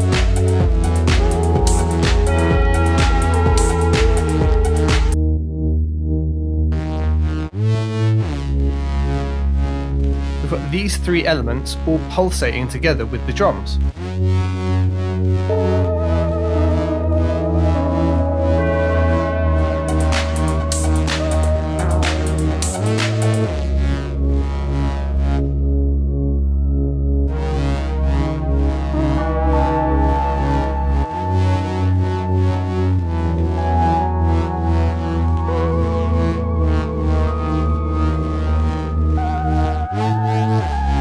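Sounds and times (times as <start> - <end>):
electronic drums: 0.0 - 5.2, 19.6 - 23.5
deep bass: 0.0 - 41.0
pulsing synthesizer chords: 0.0 - 41.0.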